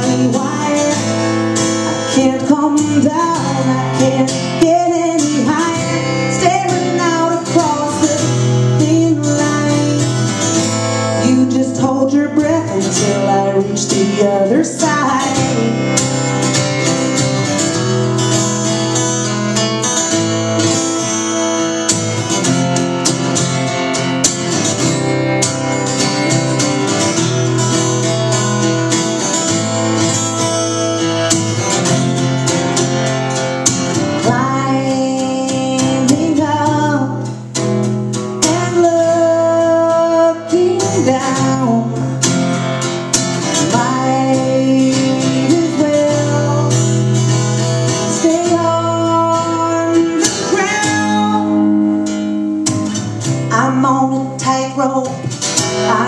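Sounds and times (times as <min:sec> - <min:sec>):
acoustic guitar strumming: 0:00.0 - 0:56.0.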